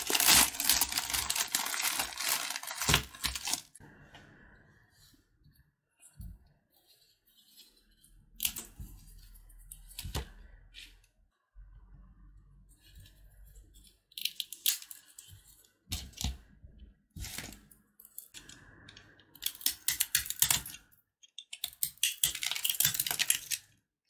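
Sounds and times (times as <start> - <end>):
puffed-rice bars crackling: 0.0 - 3.8.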